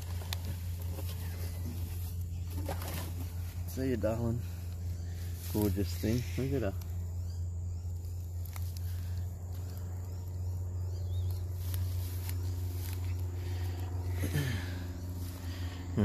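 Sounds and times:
grass rustling near microphone: 0.0s - 16.0s
low hum: 0.0s - 16.0s.

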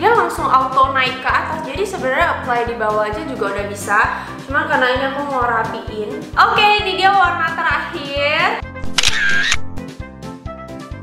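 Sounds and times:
background music with steady beat: 0.0s - 9.0s
camera shutter sound effect: 8.8s - 9.8s.

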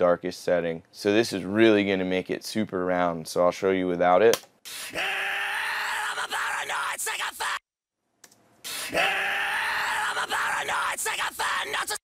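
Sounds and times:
distorted screamed metal vocal: 4.8s - 7.6s, 8.7s - 12.0s.

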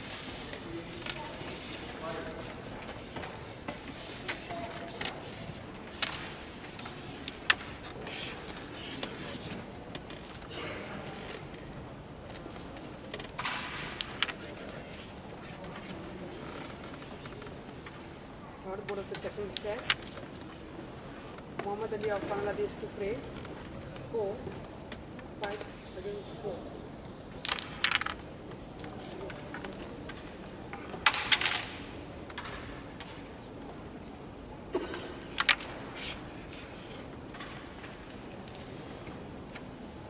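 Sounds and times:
sharp clicks of carrom pieces: 12.3s - 14.8s, 18.9s - 20.6s, 27.3s - 33.3s, 35.2s - 38.7s.

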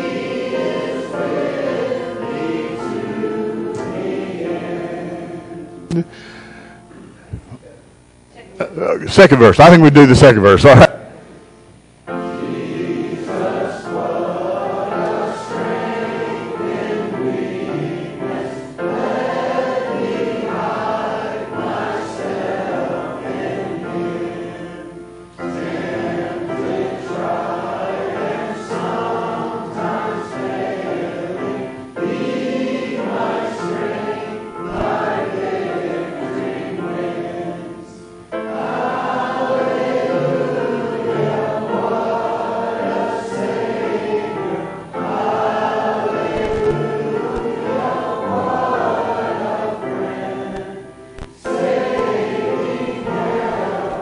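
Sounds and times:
congregation singing a hymn: 0.0s - 7.2s, 8.7s - 54.0s.

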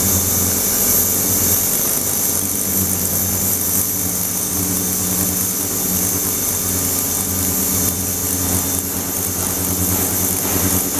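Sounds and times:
ultrasonic cleaner humming: 6.6s - 10.9s.

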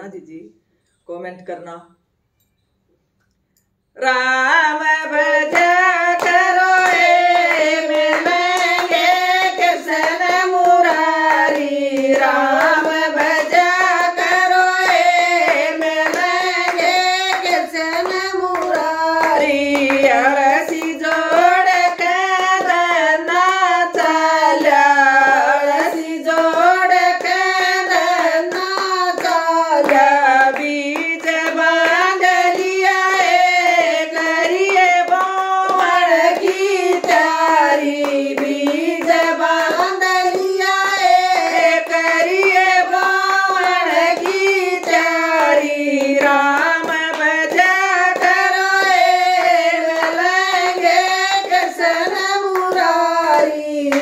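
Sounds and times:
women singing together: 3.9s - 54.0s
hands clapping in rhythm: 4.8s - 54.0s.

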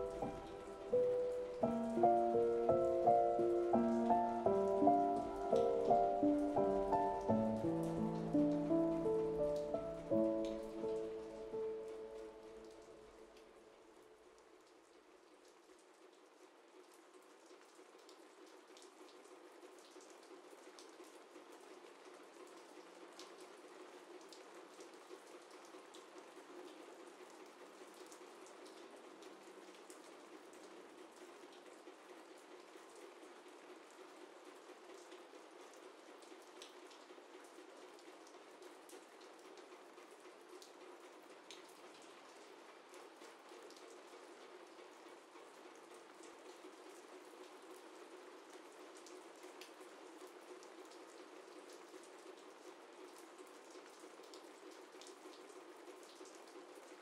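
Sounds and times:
faint steady rain: 0.0s - 57.0s.

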